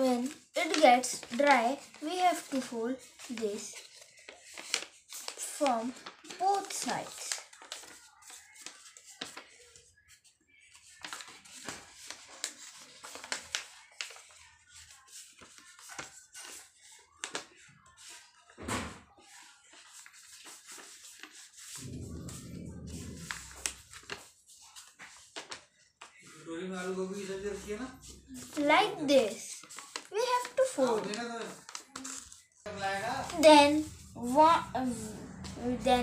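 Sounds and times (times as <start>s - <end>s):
paper crinkling and folding: 0.0s - 18.6s, 19.2s - 26.1s, 26.8s - 36.0s
low rumble: 21.8s - 23.9s, 33.8s - 36.0s.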